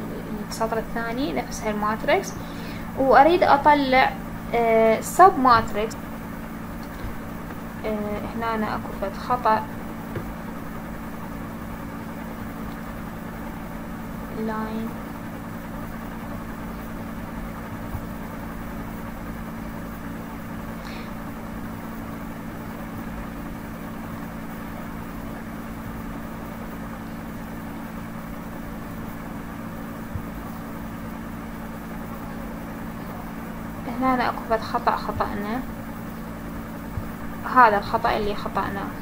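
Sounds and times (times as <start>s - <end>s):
low mechanical hum: 0.0s - 39.0s.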